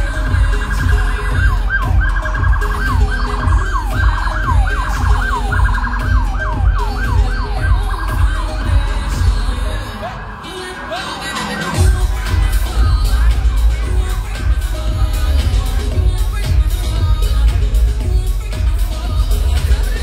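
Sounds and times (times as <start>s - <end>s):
music with heavy bass beat: 0.0s - 20.0s
police siren wailing: 0.2s - 11.9s.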